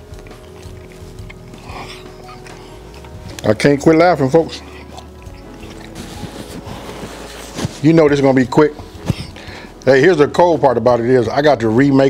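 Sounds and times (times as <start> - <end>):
chewing crunchy food: 0.0 - 7.8
man talking: 3.4 - 4.8, 7.8 - 8.8, 9.8 - 12.0.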